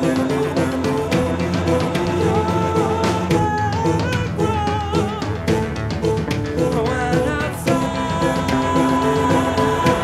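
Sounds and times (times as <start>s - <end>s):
drum kit: 0.0s - 10.0s.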